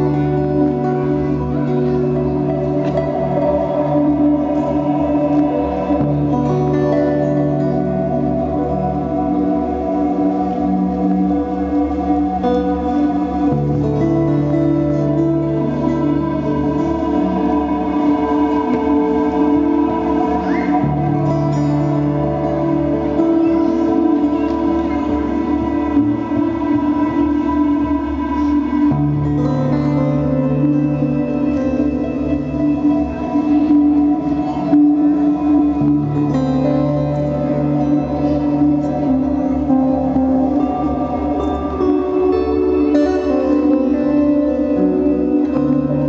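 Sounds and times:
acoustic guitars playing: 0.0s - 46.0s
long held ambient tones: 0.0s - 46.0s.

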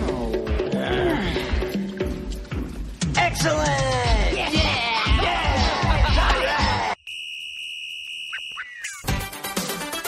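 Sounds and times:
high-pitched electronic beep: 7.0s - 9.1s
short sliding chirps: 7.3s - 9.1s.

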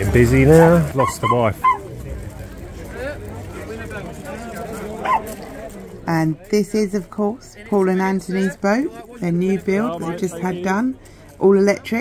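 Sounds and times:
crowd chatter: 0.0s - 12.0s
dog bark: 5.0s - 5.3s.

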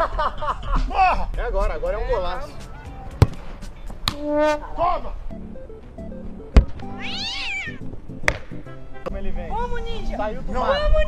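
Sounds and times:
background music: 0.0s - 11.0s
cat-like meow: 7.0s - 7.8s.

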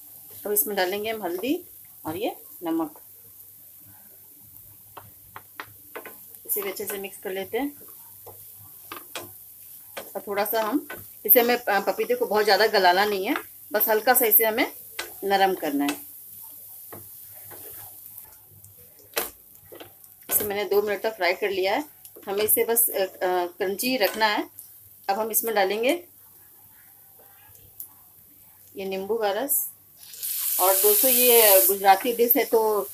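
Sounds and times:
faint steady hiss: 0.0s - 32.9s
kitchenware tapping a frying pan: 4.9s - 7.2s, 7.8s - 13.6s, 14.4s - 16.1s
spatula knocking against pan: 5.0s - 7.1s
spatula scraping frying pan: 17.0s - 18.1s.

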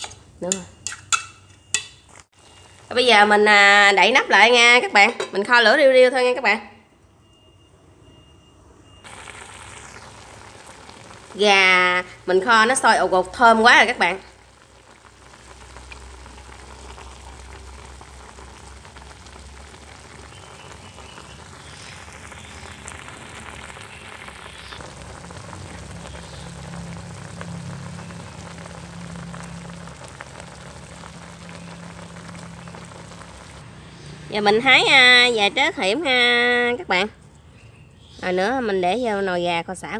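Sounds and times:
pot bubbling and sizzling: 0.0s - 6.3s, 8.9s - 37.0s
low hum: 24.8s - 33.6s.

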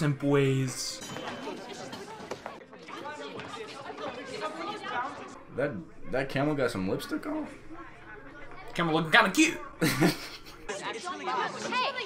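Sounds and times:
people talking over one another: 10.7s - 12.0s.

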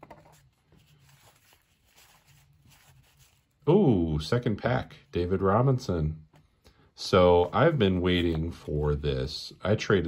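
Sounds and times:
cards rustling and flipping: 0.0s - 3.6s, 7.2s - 8.9s.

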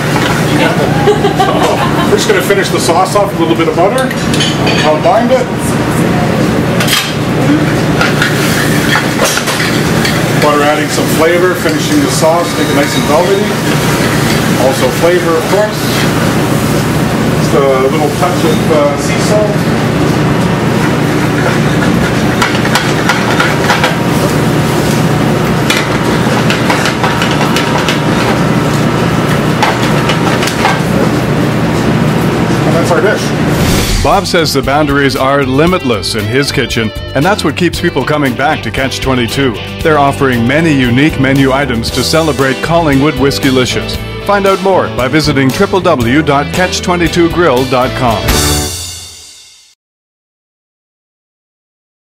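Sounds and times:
gas burner roaring: 0.0s - 35.9s, 40.3s - 46.2s
kitchen hum: 0.0s - 48.8s
shrimp sizzling in a pan: 8.0s - 18.8s.

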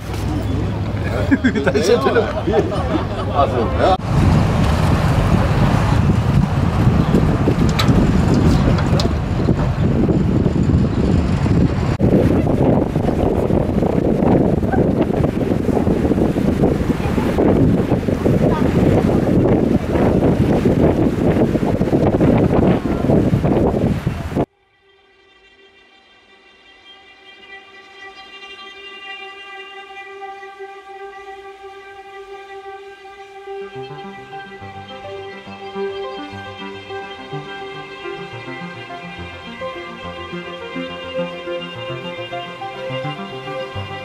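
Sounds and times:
boat engine rumble: 0.0s - 24.5s
wind on microphone: 3.8s - 24.5s.

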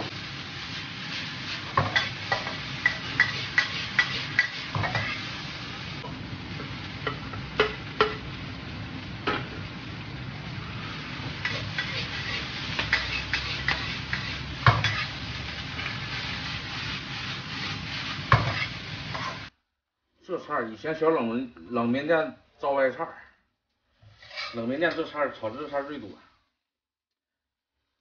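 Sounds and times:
food sizzling: 0.0s - 19.5s, 23.9s - 26.2s
metal spatula scraping a wok: 1.0s - 5.4s, 11.4s - 19.5s, 23.9s - 25.8s.

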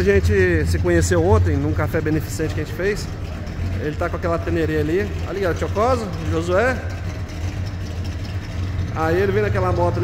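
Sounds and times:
low machine hum: 0.0s - 10.0s.

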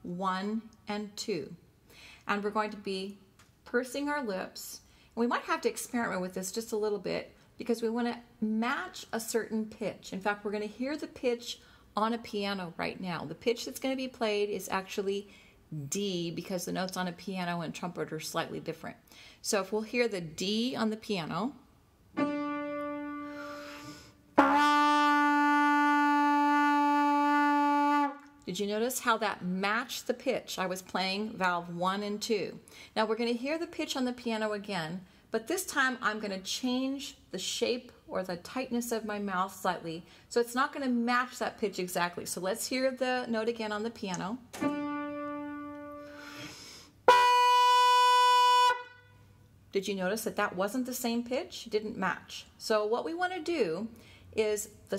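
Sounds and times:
piano note: 22.2s - 23.8s, 44.6s - 46.2s
trumpet long steady note: 22.2s - 28.3s, 44.6s - 49.2s.

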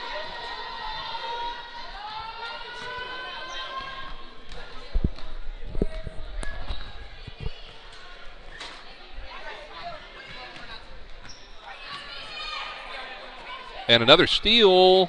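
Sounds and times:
voices: 0.0s - 15.0s.

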